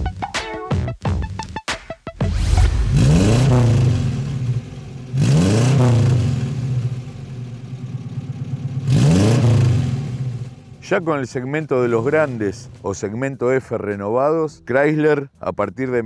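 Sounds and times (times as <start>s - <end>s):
car engine idling and revving: 2.3s - 13.0s.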